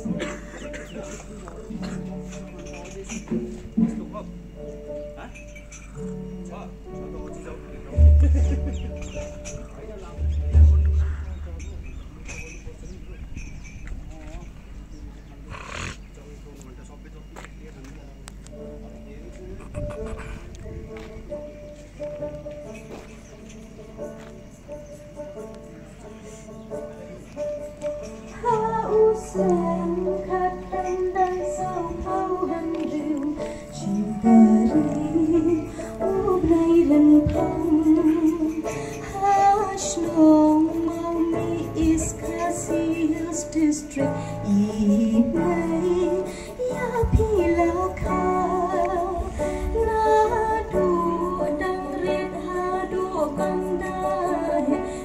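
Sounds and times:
amplified instrumental accompaniment: 0:00.0 - 0:12.5
murmur of voices: 0:00.0 - 0:55.0
steady low hum: 0:06.8 - 0:22.3
woman singing through pa system: 0:28.4 - 0:54.9.

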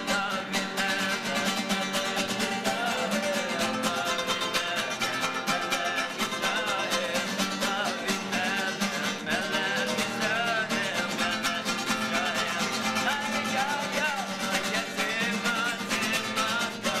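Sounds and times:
acoustic guitar: 0:00.0 - 0:17.0
man singing: 0:00.0 - 0:17.0.

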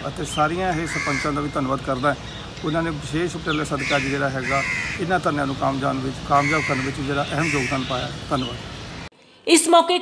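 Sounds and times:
crow cawing: 0:00.7 - 0:01.6, 0:03.8 - 0:05.3, 0:06.3 - 0:08.0.

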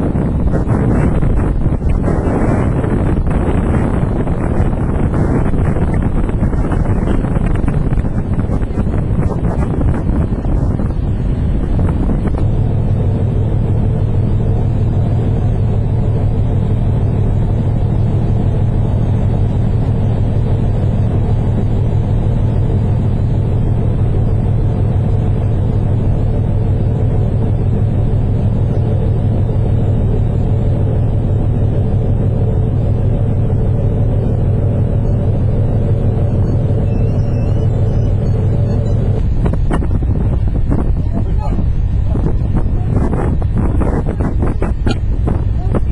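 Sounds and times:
ship engines droning: 0:00.0 - 0:45.9.

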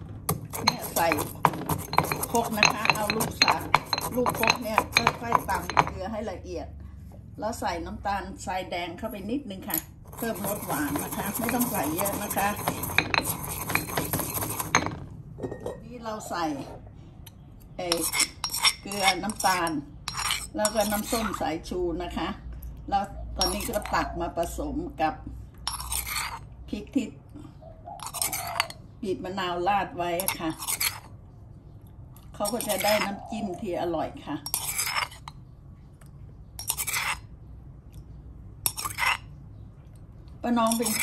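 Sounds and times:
metal spoon scraping and clinking: 0:00.3 - 0:06.1, 0:09.6 - 0:15.8, 0:17.3 - 0:21.6, 0:23.4 - 0:24.6, 0:25.6 - 0:26.5, 0:28.0 - 0:28.8, 0:30.1 - 0:31.1, 0:32.4 - 0:33.8, 0:34.4 - 0:35.4, 0:36.6 - 0:37.3, 0:38.6 - 0:39.3, 0:40.5 - 0:41.0.

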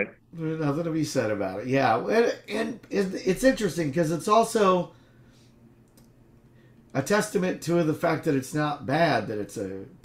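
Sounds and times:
faint clicks: 0:05.8 - 0:07.0.

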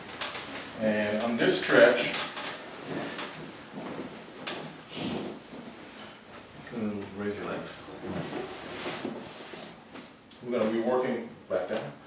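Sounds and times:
rustling on massage table: 0:00.0 - 0:11.8.

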